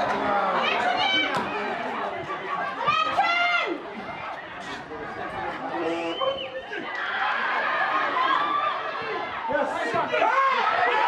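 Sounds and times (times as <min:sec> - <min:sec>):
spectators shouting and chattering: 0:00.0 - 0:11.0.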